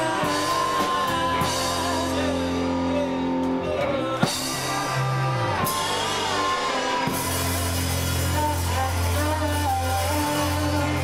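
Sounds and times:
electric guitar lines: 0.0 - 11.0.

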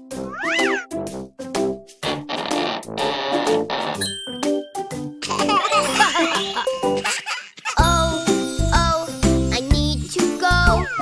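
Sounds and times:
instrumental children's song: 0.0 - 11.0.

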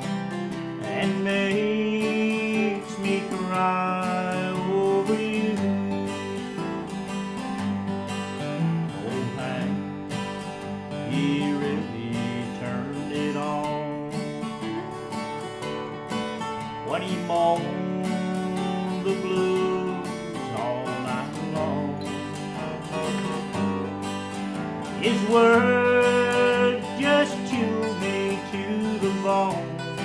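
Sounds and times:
picked guitar melody: 0.0 - 30.0
strummed acoustic guitar: 0.0 - 30.0.

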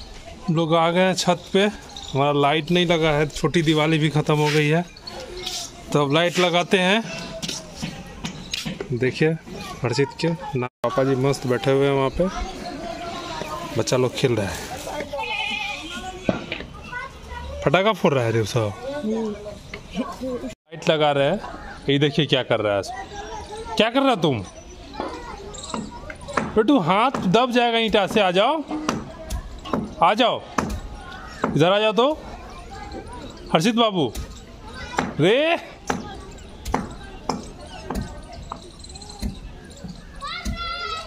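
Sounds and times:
goat bleating: 15.2 - 16.3.

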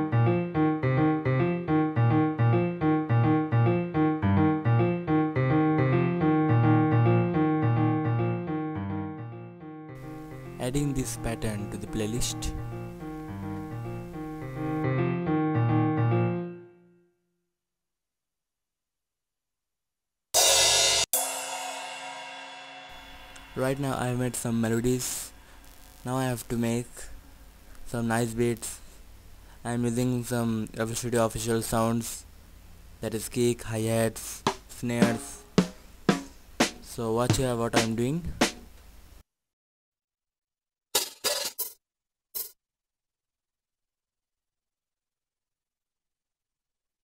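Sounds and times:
snare and hi-hat hits: 20.4 - 24.3, 34.4 - 38.7
crash cymbal hits: 20.4 - 24.6.

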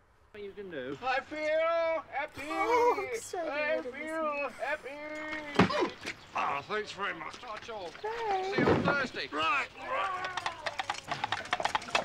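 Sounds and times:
coconut shells knocked together: 9.8 - 12.0.

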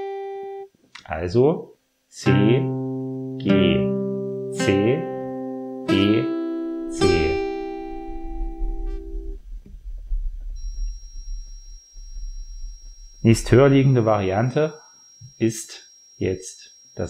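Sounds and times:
acoustic guitar picked notes: 0.0 - 0.7, 2.2 - 16.4
low hum: 6.6 - 15.4.

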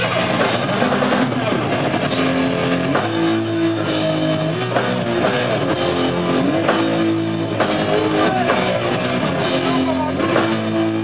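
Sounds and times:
distorted electric guitar and bass: 0.0 - 11.0.

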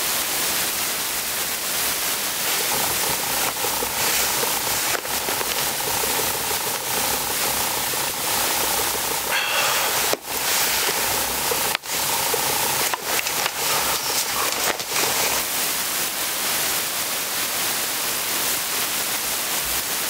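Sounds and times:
outdoor noise hiss: 0.0 - 20.0.

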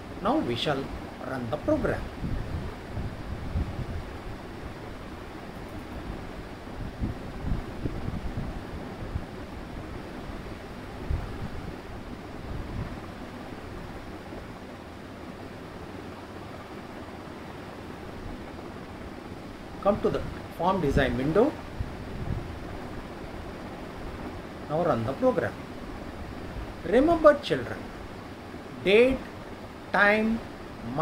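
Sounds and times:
steady background hiss: 0.0 - 31.0.

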